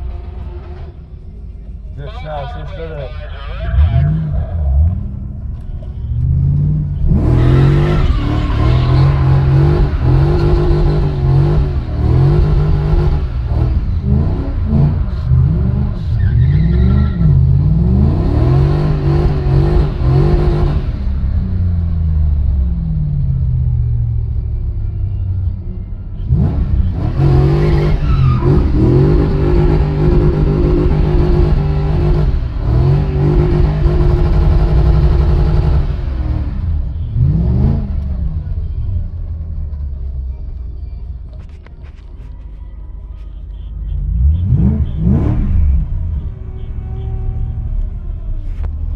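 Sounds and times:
car engine revving hard: 6.5s - 16.0s, 16.7s - 21.2s, 26.3s - 38.1s, 44.2s - 45.8s.

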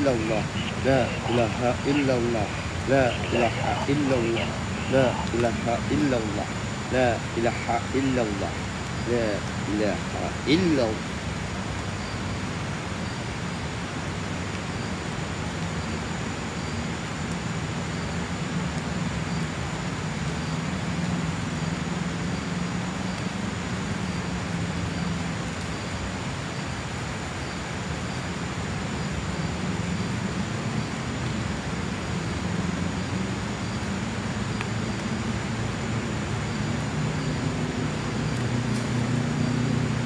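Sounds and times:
even hiss: 0.0s - 11.3s.

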